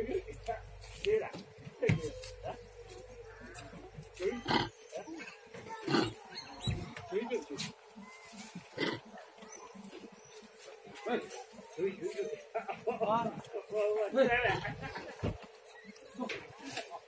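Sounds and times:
background voices: 0.0 - 9.5
faint monkey calls: 1.8 - 7.0
macaques shrieking: 2.0 - 5.2.

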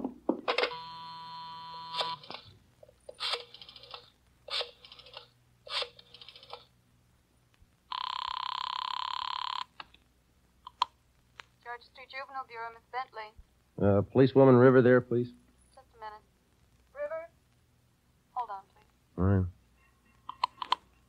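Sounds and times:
buzzing dial tone: 0.5 - 2.4, 7.9 - 9.7
buzzing telephone ring: 0.5 - 2.5, 7.9 - 9.7.

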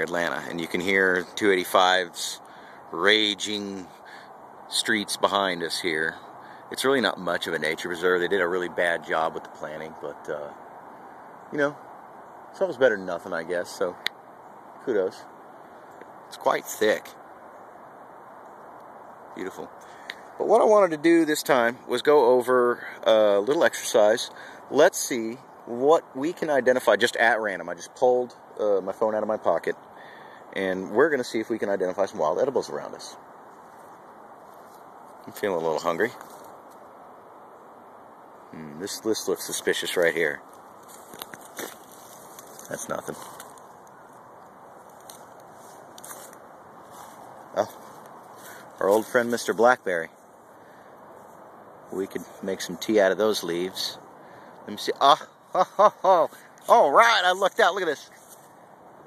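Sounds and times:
distant highway traffic hiss: 0.0 - 59.0
footsteps through leaf litter: 40.8 - 43.7, 44.8 - 49.3.

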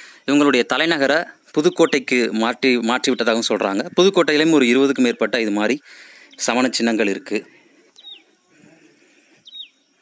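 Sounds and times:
bird chirp: 0.0 - 10.0
man's voice: 6.4 - 7.5.

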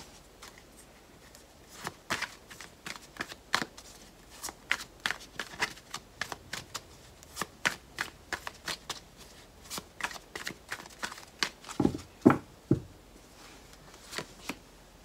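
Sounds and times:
cards being shuffled: 0.4 - 12.1.

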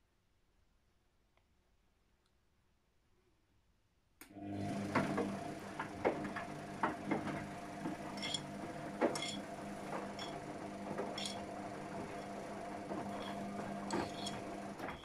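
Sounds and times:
washing machine drum motor humming: 4.3 - 15.0.

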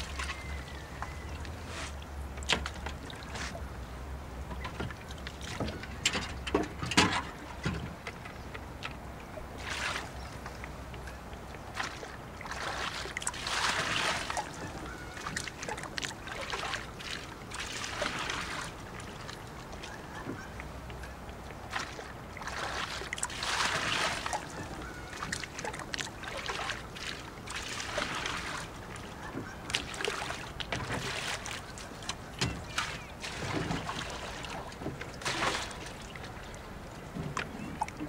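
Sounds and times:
water sloshing and splashing: 0.0 - 38.0.

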